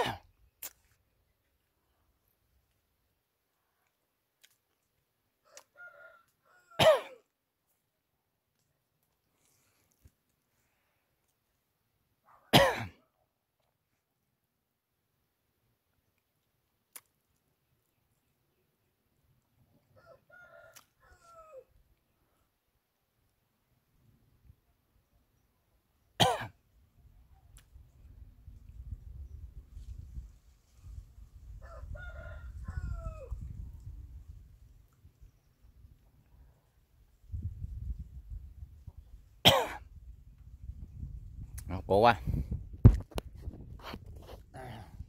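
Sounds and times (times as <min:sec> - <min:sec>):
person coughing: 0:00.0 - 0:00.2, 0:06.8 - 0:07.2, 0:12.5 - 0:13.0, 0:26.2 - 0:26.6, 0:39.5 - 0:39.8
faint rooster crowing: 0:05.4 - 0:07.0, 0:19.8 - 0:21.9, 0:31.5 - 0:34.0
low rumble on microphone: 0:39.9 - 0:45.0.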